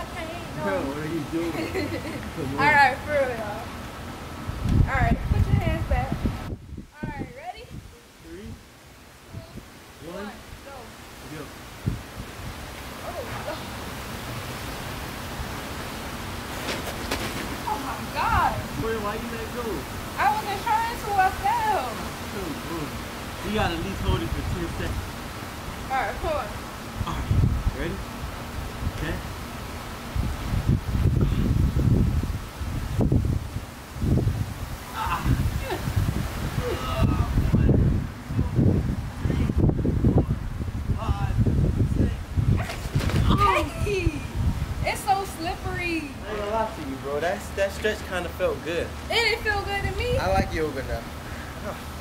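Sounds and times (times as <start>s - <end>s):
wind buffeting microphone: 0.0s - 47.4s, 48.7s - 52.0s
rushing outdoor background noise: 0.0s - 52.0s.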